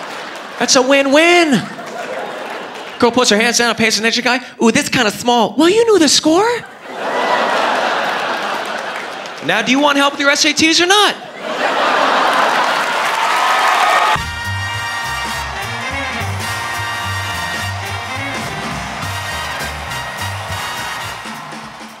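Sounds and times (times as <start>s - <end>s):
audience applauding and cheering: 0.0s - 3.4s, 6.9s - 10.6s, 11.4s - 22.0s
music with steady bass beat: 14.2s - 22.0s.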